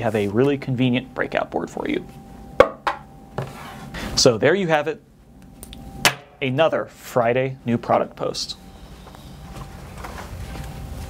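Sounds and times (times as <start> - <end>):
faint steady hum: 0.0 - 11.0
knocks on a table: 2.6 - 3.5.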